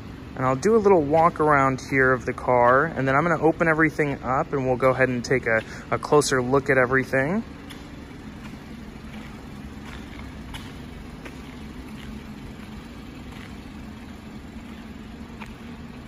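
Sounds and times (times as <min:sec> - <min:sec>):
car engine idling: 0:00.0 - 0:16.0
faint footstep-like clicks: 0:01.0 - 0:03.5, 0:04.8 - 0:06.3, 0:07.6 - 0:16.0.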